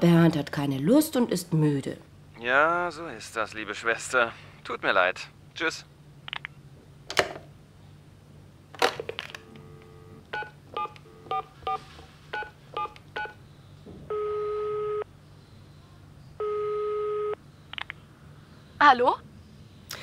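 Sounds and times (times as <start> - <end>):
keypad tones: 9.4 - 11.8, 12.4 - 13.4
phone ringing tones in earpiece: 9.4 - 13.4, 14.1 - 15.0, 16.4 - 17.4
dial tone: 14.1 - 15.0, 16.4 - 17.4.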